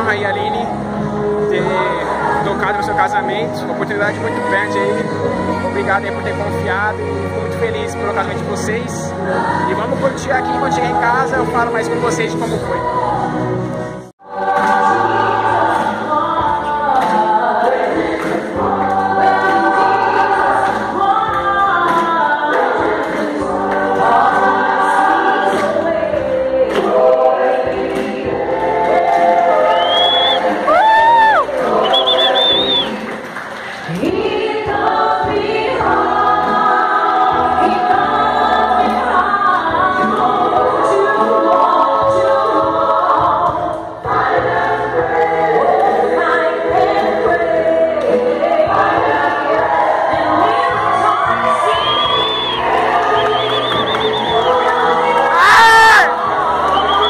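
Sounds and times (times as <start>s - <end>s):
choir singing: 14.2s - 33.2s, 33.9s - 57.0s
short high whistles: 29.7s - 30.4s, 31.8s - 33.0s, 51.7s - 54.6s.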